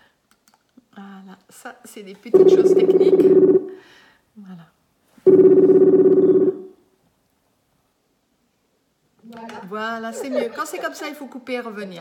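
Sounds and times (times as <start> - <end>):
buzzing electronic call tone: 2.4 - 3.8, 5.3 - 6.7.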